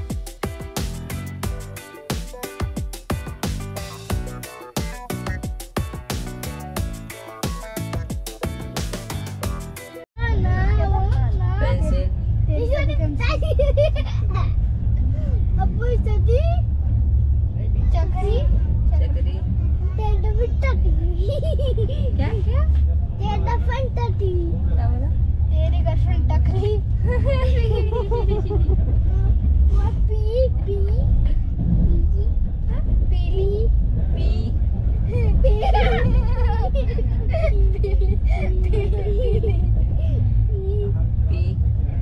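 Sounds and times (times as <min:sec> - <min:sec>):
train coach rumbling on track: 0:07.8 - 0:42.0
children's voices and laughter: 0:10.4 - 0:16.6, 0:20.0 - 0:22.7, 0:26.4 - 0:33.7, 0:35.0 - 0:41.7.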